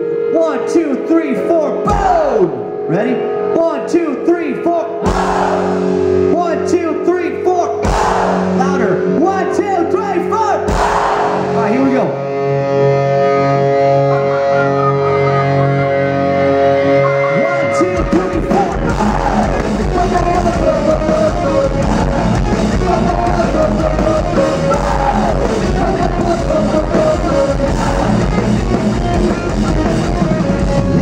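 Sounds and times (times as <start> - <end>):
drums: 1.8 - 2.6, 5.0 - 6.8, 7.7 - 10.0, 10.6 - 12.1, 17.0 - 31.0
pop-punk band playing live: 1.8 - 2.9, 5.0 - 6.7, 7.7 - 31.0
crowd shouting along: 5.0 - 6.2, 7.8 - 8.6, 10.7 - 11.8, 17.0 - 29.1.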